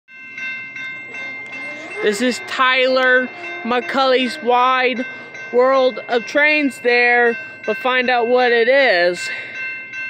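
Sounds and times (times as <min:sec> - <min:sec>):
railroad crossing bell ringing: 0:00.1 - 0:10.0.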